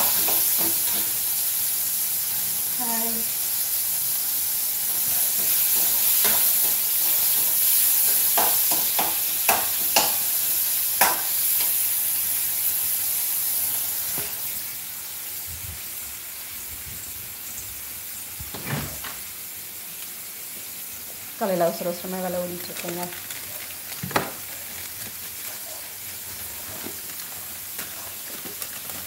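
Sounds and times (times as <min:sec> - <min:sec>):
food sizzling in frying pan: 0:00.0 - 0:29.0.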